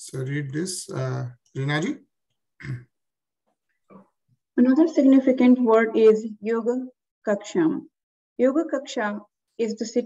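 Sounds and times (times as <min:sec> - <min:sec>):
person clearing throat: 0:02.6 - 0:02.9.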